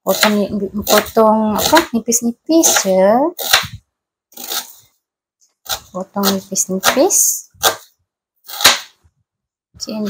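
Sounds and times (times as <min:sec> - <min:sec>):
knife chopping onion on board: 0:00.1 - 0:01.9, 0:02.6 - 0:03.8, 0:05.7 - 0:07.9, 0:08.5 - 0:09.0.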